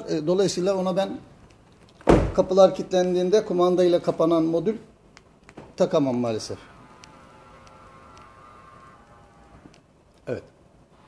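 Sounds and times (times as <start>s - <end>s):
mirror fold motor whining: 6.6s - 9.9s.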